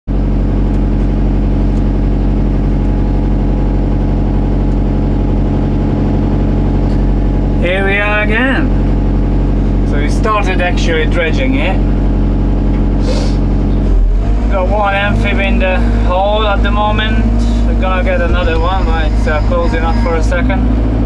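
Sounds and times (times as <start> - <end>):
diesel excavator engine idling: 0.1 - 21.0.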